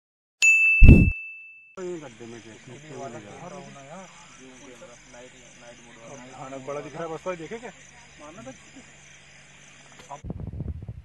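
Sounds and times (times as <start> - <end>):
bright ringing ding: 0.4 - 1.8
deep boom: 0.8 - 1.1.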